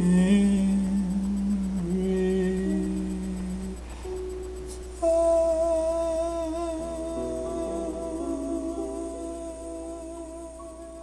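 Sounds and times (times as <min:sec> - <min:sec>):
layered humming in harmony: 0:00.0 - 0:11.0.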